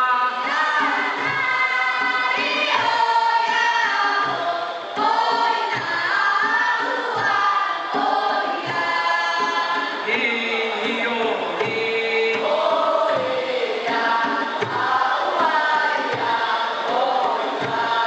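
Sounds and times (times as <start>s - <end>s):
group singing folk song: 0.0s - 18.0s.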